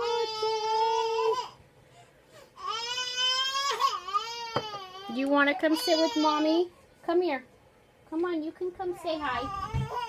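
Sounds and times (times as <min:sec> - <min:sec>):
baby crying: 0:02.6 - 0:06.4, 0:09.2 - 0:10.0.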